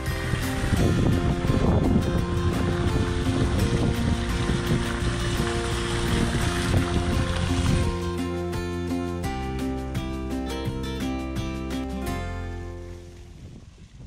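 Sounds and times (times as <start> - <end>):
wind on microphone: 0.0 - 8.2, 13.0 - 14.0
fountain water rushing: 0.0 - 10.3, 12.5 - 14.0
background music: 0.0 - 13.3.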